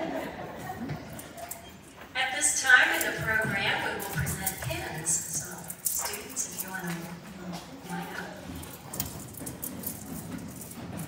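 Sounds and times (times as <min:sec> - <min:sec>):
footsteps on hard floor: 0:02.0 - 0:11.0.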